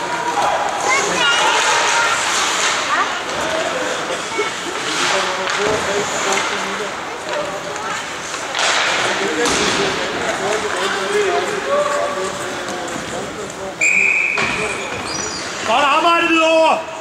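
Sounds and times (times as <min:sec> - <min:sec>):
spectators talking: 0:00.0 - 0:17.0.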